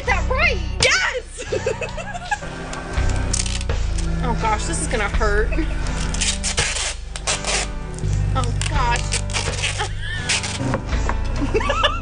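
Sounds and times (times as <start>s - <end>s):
background music: 0.0s - 12.0s
adhesive tape ripping off a roll: 2.7s - 4.1s, 5.9s - 10.8s.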